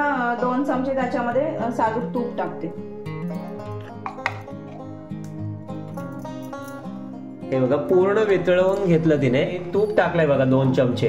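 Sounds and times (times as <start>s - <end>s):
plucked-string tune: 1.0s - 11.0s.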